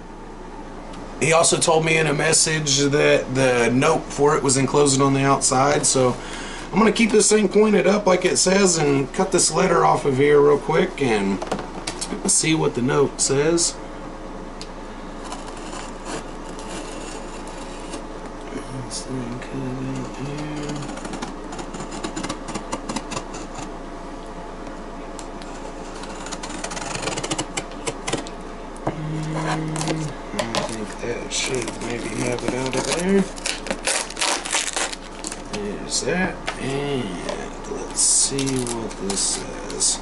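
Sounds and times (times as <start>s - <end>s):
knife cutting tape and cardboard: 20.2s - 23.7s, 25.5s - 28.3s.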